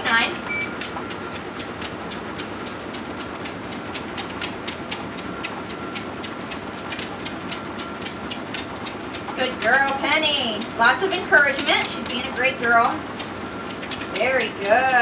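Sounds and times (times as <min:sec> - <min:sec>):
treadmill motor whine: 0:00.0 - 0:15.0
dog paws tapping on belt: 0:09.4 - 0:13.0.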